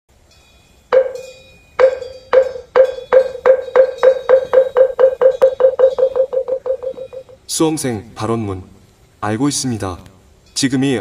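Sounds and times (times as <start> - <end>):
wooden fish struck with mallet: 1.8 - 7.4.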